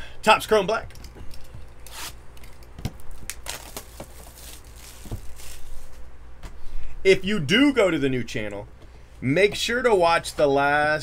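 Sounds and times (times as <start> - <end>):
wrapping and cardboard tearing: 1.8 - 6.0.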